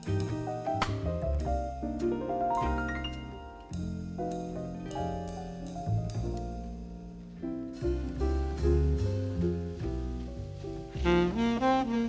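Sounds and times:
instrumental jazz ballad: 0:00.0 - 0:12.0.

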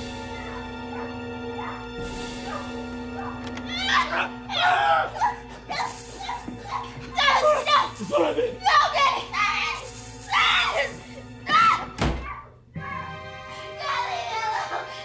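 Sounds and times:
dark film score: 0:00.0 - 0:15.0.

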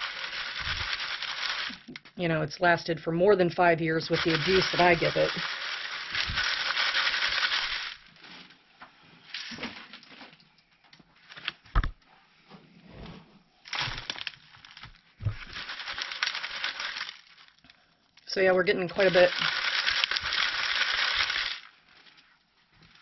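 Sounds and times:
compost rustling through mesh: 0:00.0 - 0:01.9, 0:04.2 - 0:08.6, 0:13.6 - 0:17.6, 0:18.8 - 0:22.3.

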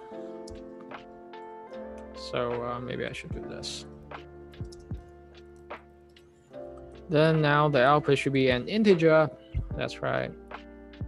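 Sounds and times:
background music of held tones: 0:00.0 - 0:11.0
computer keyboard keystrokes: 0:04.6 - 0:05.1.

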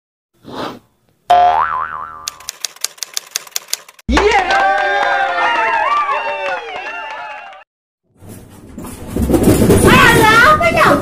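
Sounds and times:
cartoon boing: 0:01.3 - 0:02.4
typewriter-like ticks: 0:02.3 - 0:04.0.

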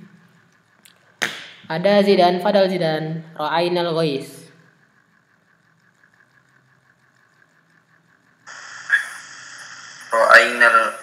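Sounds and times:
steady background hiss: 0:08.4 - 0:11.0.

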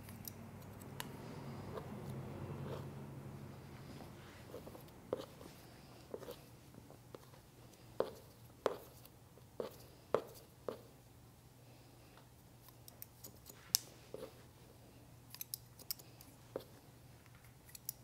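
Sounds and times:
soft handling of hair: 0:02.8 - 0:09.0.

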